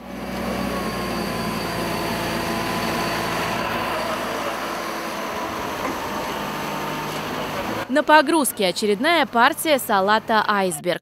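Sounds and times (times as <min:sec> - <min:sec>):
loader engine running: 0:00.0 - 0:11.0
thin steady whine: 0:00.0 - 0:11.0.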